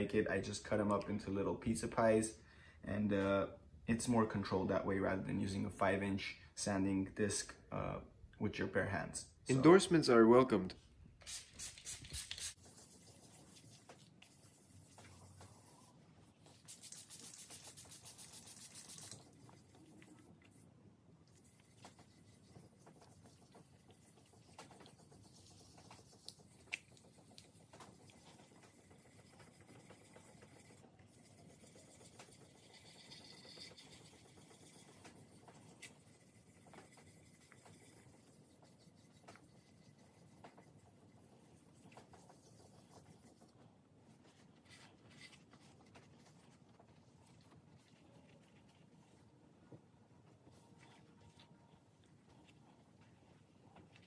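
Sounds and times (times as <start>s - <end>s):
sandpaper rubbing: 11.2s - 20.6s.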